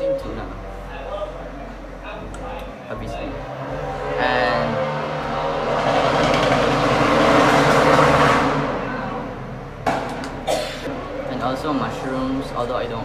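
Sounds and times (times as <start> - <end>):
road vehicle passing by: 0.3 - 13.0.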